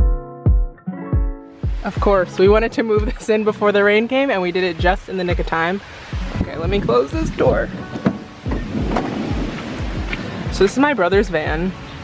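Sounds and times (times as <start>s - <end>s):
steady hiss of rain: 2.8s - 12.0s
vehicle door shutting: 7.9s - 10.2s.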